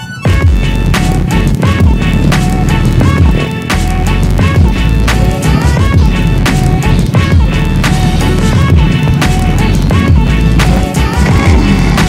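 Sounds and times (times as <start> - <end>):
electronic music with heavy beat: 0.0 - 12.0
deep falling bass notes: 0.4 - 12.0.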